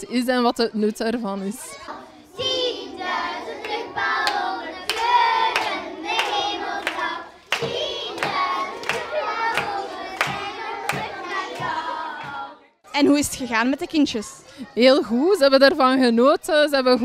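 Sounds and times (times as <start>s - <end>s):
children singing a pop song: 1.5s - 12.8s
hand claps: 3.6s - 12.4s.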